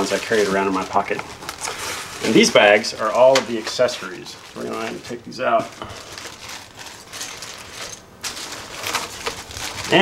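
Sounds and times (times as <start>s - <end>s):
plastic bags crinkling: 0.0s - 10.0s.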